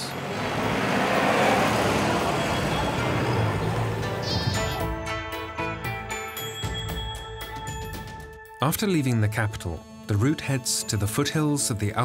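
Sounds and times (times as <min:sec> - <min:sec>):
van driving past: 0:00.0 - 0:04.8
music: 0:02.5 - 0:12.0.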